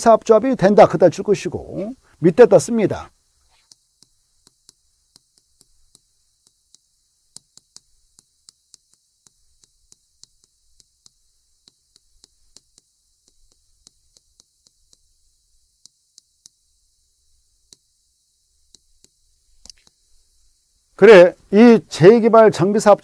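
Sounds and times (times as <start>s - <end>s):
chalk tapping on chalkboard: 3.4s - 20.3s.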